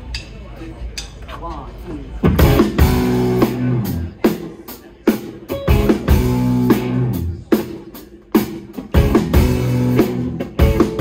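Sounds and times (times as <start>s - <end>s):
bass guitar: 2.2s - 4.5s, 5.1s - 11.0s
drum kit hits: 2.3s - 4.2s, 5.5s - 11.0s
electric guitars: 2.3s - 4.2s, 5.1s - 11.0s.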